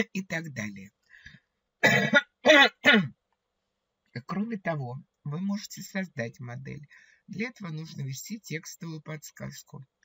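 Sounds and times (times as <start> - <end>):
woman clearing her throat: 1.8 - 3.1.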